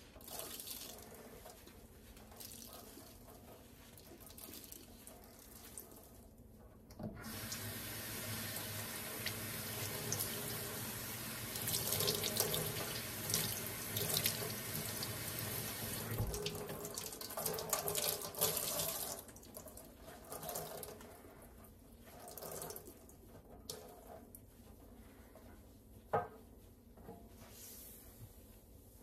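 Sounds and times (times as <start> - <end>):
water splashing in sink: 0.2 - 6.2, 7.2 - 21.2, 22.0 - 24.2
faucet running into metal sink: 7.2 - 19.4.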